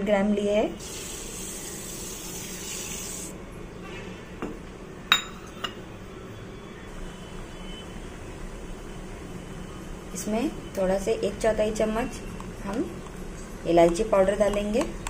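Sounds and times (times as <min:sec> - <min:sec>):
sugar pouring into water: 0:00.8 - 0:03.3.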